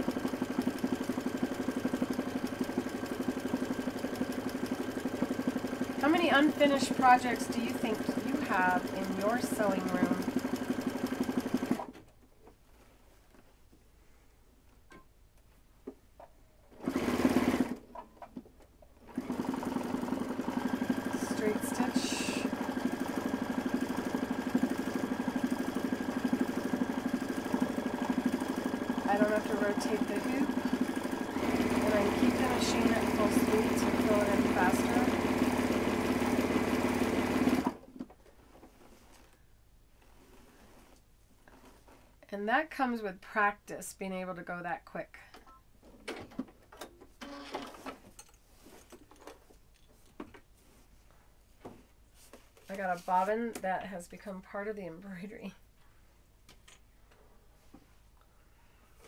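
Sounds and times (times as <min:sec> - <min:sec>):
sewing machine stitching: 0:00.0 - 0:12.0, 0:16.7 - 0:18.0, 0:19.0 - 0:37.8, 0:47.2 - 0:48.0.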